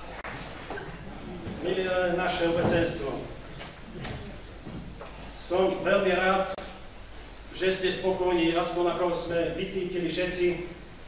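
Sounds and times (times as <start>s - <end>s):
man speaking in a hall: 0.8s - 4.4s, 5.1s - 11.0s.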